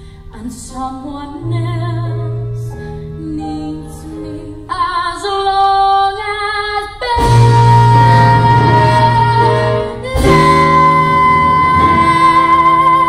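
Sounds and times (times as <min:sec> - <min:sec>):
girl singing a ballad: 0:00.0 - 0:13.0
sustained instrumental backing: 0:07.2 - 0:13.0.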